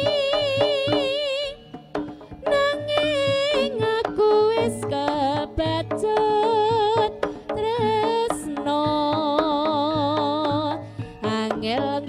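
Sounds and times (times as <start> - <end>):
drum strikes: 0.0 - 12.0
wavering melody: 0.0 - 12.0.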